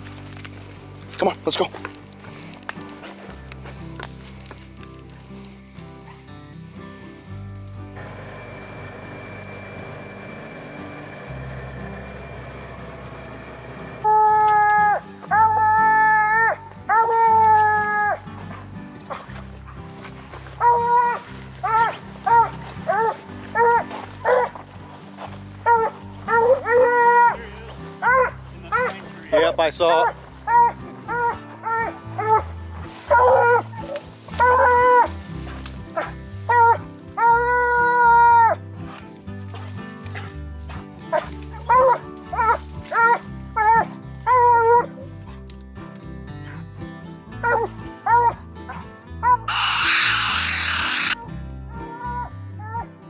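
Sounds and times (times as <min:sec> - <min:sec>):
dog baying: 0:14.1 - 0:24.6, 0:25.6 - 0:27.4, 0:28.0 - 0:29.0, 0:30.0 - 0:38.6, 0:47.4 - 0:51.2
dog barking: 0:20.6 - 0:24.6, 0:25.6 - 0:27.4, 0:28.0 - 0:29.0, 0:30.0 - 0:32.5, 0:33.1 - 0:35.1, 0:47.4 - 0:48.4.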